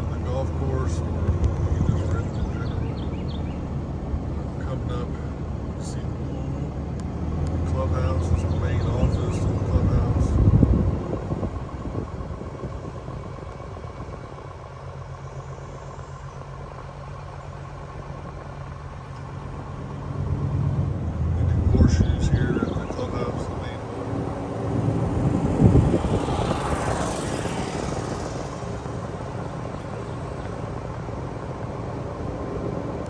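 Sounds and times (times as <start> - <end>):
vehicle engine low hum: 0.0 - 33.0.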